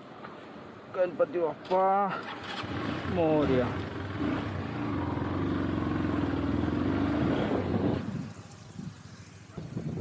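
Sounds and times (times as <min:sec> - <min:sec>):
motorcycle engine under throttle: 0:02.2 - 0:10.0.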